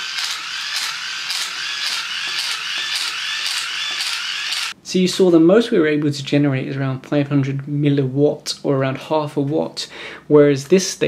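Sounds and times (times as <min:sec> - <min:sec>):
hand-crank dynamo gears whirring: 0:00.0 - 0:04.8.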